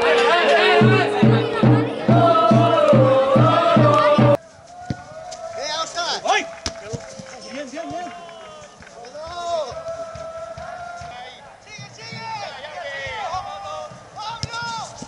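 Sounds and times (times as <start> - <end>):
background music: 0.0 - 4.4
players shouting and calling: 0.0 - 15.0
football being kicked: 14.3 - 15.0.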